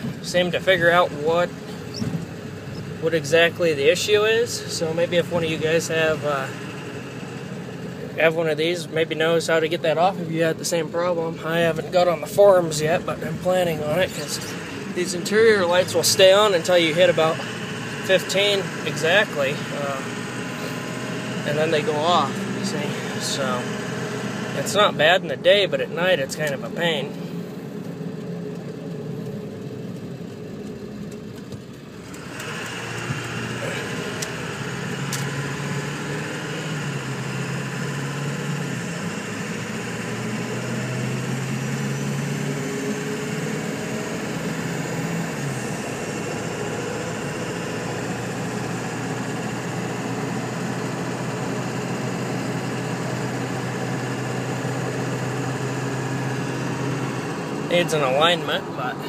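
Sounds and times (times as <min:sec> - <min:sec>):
road noise: 0:00.0 - 0:59.0
truck engine drone: 0:00.0 - 0:59.0.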